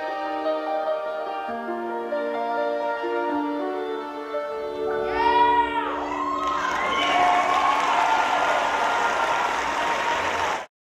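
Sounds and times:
whoops: 0:05.1 - 0:10.7
audience applauding and cheering: 0:06.0 - 0:10.7.

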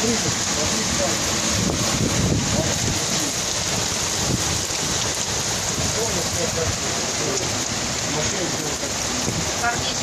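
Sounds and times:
heavy rain hissing: 0:00.0 - 0:10.0
wind gusts rumbling: 0:00.0 - 0:10.0.

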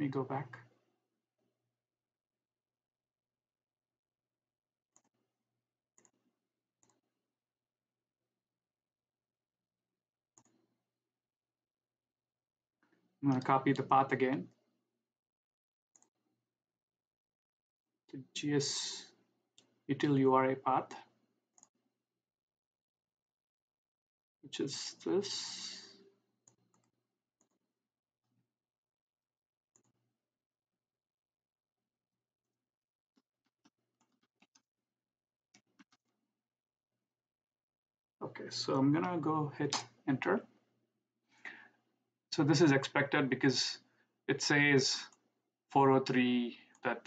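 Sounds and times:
computer mouse clicks: 0:06.0 - 0:06.2.

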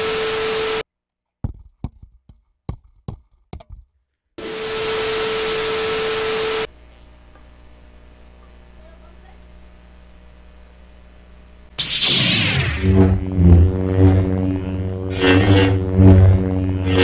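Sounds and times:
tv static hiss: 0:00.0 - 0:00.8, 0:04.4 - 0:17.0
sharp knocks and taps: 0:01.4 - 0:03.9
steady test tone: 0:11.8 - 0:17.0.

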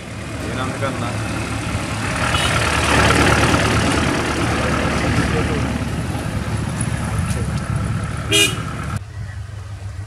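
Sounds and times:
truck engine rumbling: 0:00.0 - 0:10.0
truck horn toot: 0:02.2 - 0:03.1, 0:08.3 - 0:08.7.

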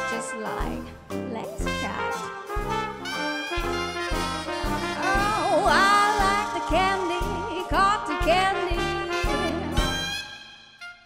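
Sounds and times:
swing jazz band: 0:00.0 - 0:10.5
person singing long notes: 0:05.0 - 0:07.7.

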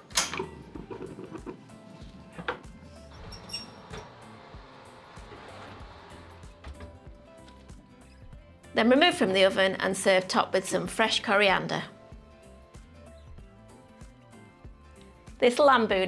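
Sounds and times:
soft background music: 0:00.0 - 0:16.0
cast-iron pot knocking: 0:00.1 - 0:01.6.

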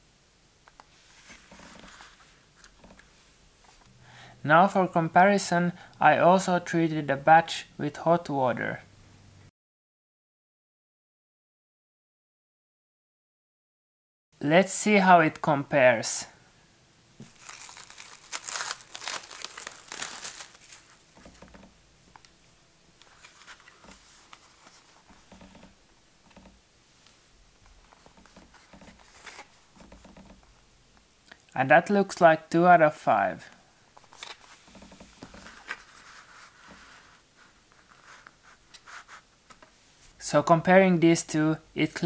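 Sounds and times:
cling film crinkling: 0:17.2 - 0:21.4, 0:34.0 - 0:36.8.

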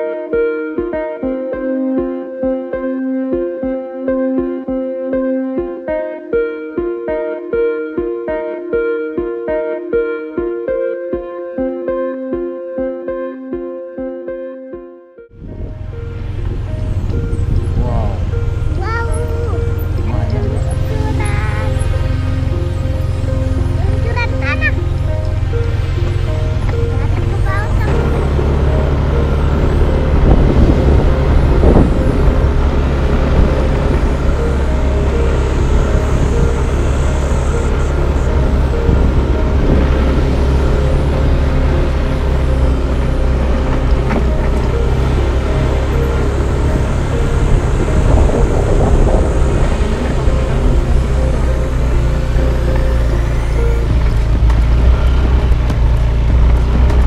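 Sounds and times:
motorcycle engine running: 0:15.4 - 0:57.0.

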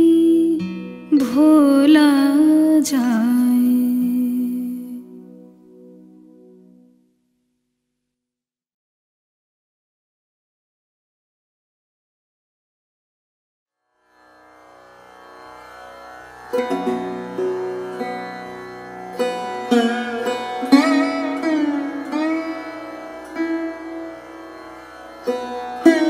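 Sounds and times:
plucked string instrument melody: 0:00.0 - 0:06.9, 0:14.4 - 0:26.0.

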